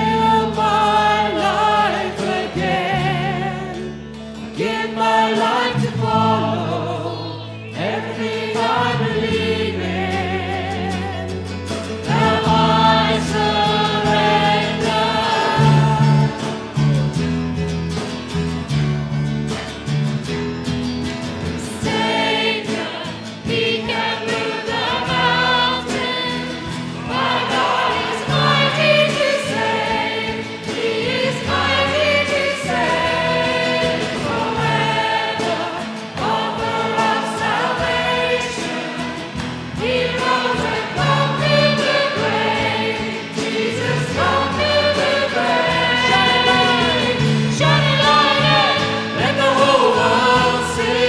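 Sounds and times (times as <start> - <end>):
congregation singing: 0.0 - 51.0
worship band playing: 0.0 - 51.0.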